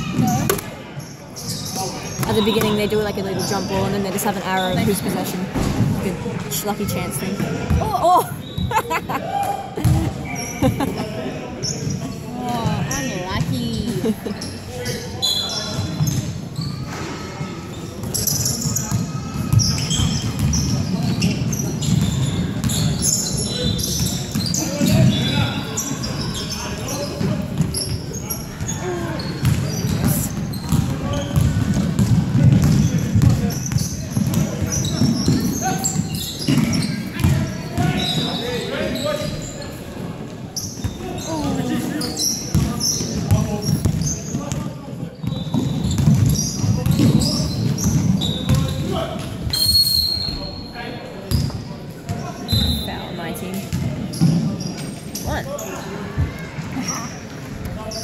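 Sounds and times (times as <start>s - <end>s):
sneaker squeaks: 0.0s - 11.0s, 11.6s - 58.0s
voices echoing in hall: 0.0s - 58.0s.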